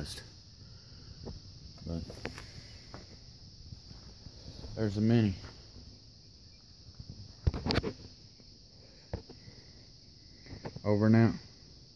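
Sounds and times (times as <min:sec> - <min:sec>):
high-pitched hiss: 0:00.0 - 0:11.9.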